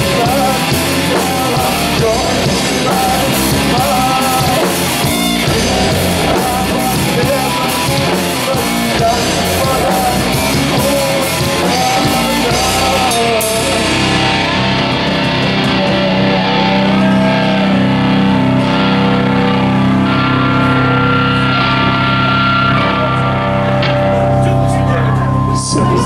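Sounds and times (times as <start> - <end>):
person singing: 0.0 - 24.2
drums: 0.0 - 26.0
electric guitars and bass chords: 0.0 - 26.0.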